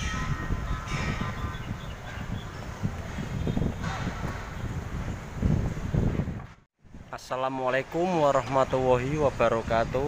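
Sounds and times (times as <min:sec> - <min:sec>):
wind buffeting microphone: 0:00.0 - 0:07.3, 0:08.0 - 0:10.0
street traffic rumble: 0:00.0 - 0:10.0.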